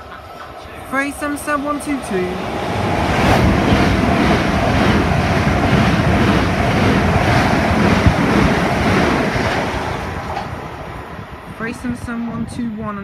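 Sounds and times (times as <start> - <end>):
train rushing past: 0.0 - 13.0.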